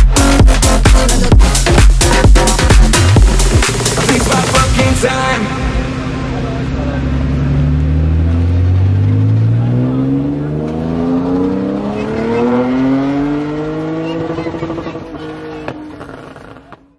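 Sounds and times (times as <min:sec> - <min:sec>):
car accelerating hard: 0:02.4 - 0:16.9.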